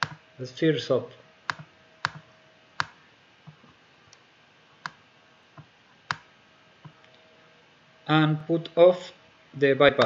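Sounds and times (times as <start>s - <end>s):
computer mouse clicks: 1.5s - 2.2s.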